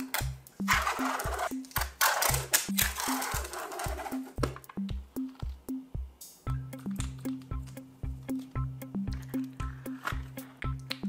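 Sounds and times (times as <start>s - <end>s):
background music with a beat: 0.0s - 11.0s.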